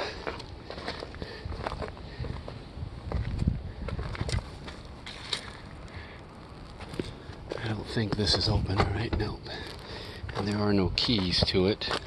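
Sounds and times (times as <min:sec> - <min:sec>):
footsteps on stony dirt: 0:00.0 - 0:12.0.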